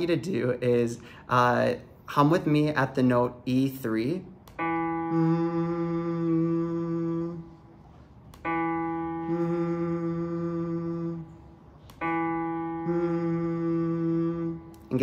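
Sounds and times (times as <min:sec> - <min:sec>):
man humming a steady note: 0:04.6 - 0:15.0.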